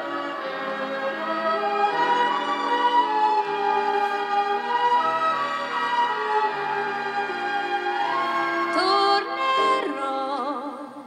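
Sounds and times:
orchestra strings sustained chords: 0.0s - 10.8s.

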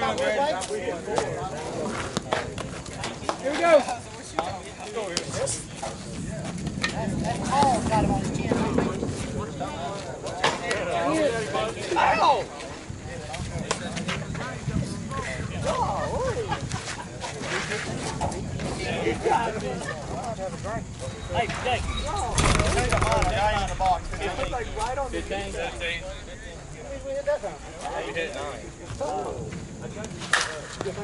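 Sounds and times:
people talking and calling out: 0.0s - 31.0s.

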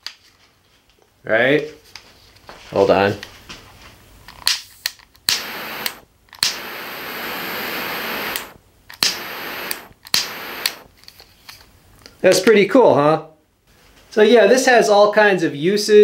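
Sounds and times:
torch ignition clicks: 5.2s - 10.9s
jet flame hissing: 5.3s - 10.9s.

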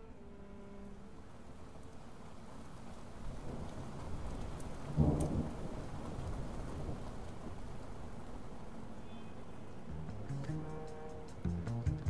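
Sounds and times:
rain falling: 0.9s - 12.0s
thunder rumble: 3.2s - 9.0s.

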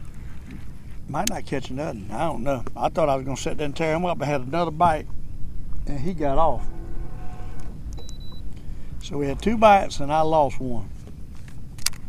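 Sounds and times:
low rumble: 2.4s - 12.0s
high electronic beep: 7.9s - 8.6s.

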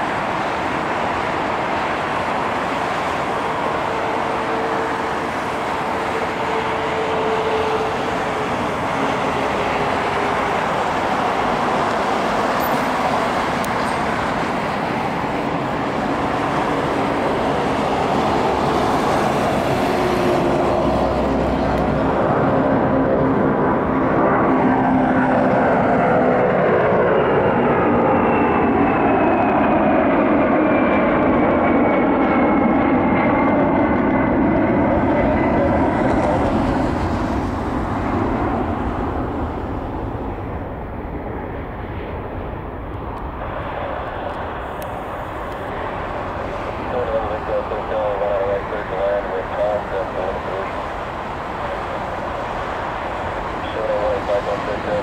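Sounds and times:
jet engines roaring at takeoff: 0.0s - 55.0s.

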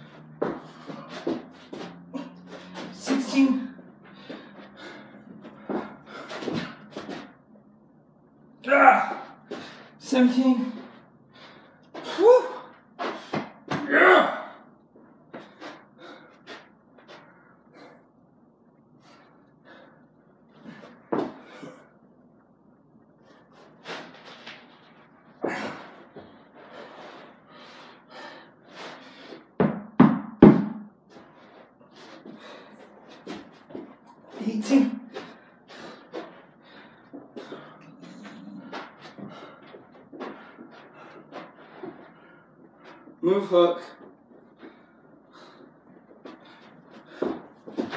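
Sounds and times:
heavy breathing: 0.0s - 7.5s, 9.2s - 10.0s, 10.8s - 13.6s, 15.3s - 18.2s, 19.0s - 22.1s, 25.4s - 29.6s, 31.1s - 43.2s, 44.0s - 47.9s
person grunting: 8.6s - 9.4s, 13.8s - 14.6s, 37.8s - 38.8s.

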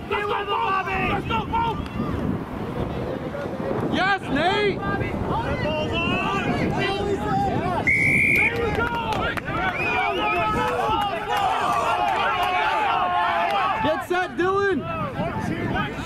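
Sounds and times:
players shouting: 0.0s - 2.4s, 3.9s - 16.0s
referee's whistle blast: 7.8s - 8.6s.

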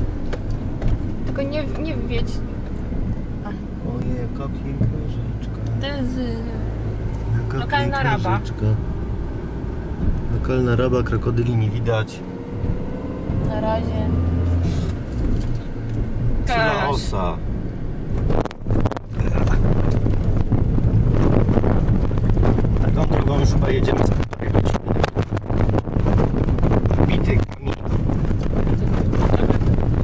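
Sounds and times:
car engine and tyres rumbling: 0.0s - 30.0s.

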